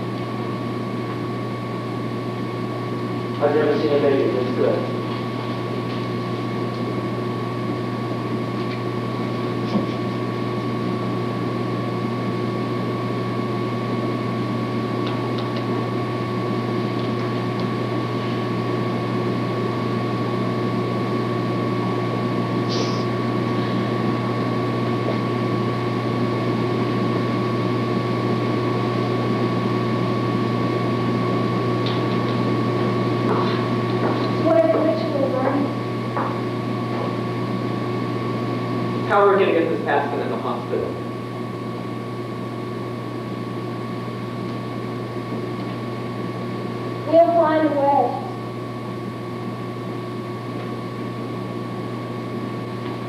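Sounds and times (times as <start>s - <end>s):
hum and hiss: 0.0s - 53.0s.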